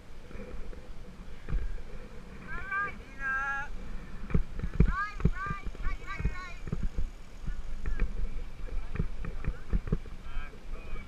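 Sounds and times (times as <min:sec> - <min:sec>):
wind on microphone: 0:00.0 - 0:11.0
bike frame knocking and rattling: 0:08.8 - 0:10.2.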